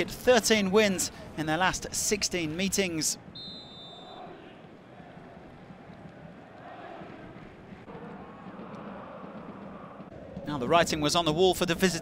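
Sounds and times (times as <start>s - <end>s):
stadium crowd din: 0.0s - 12.0s
referee's whistle blast: 3.3s - 4.2s.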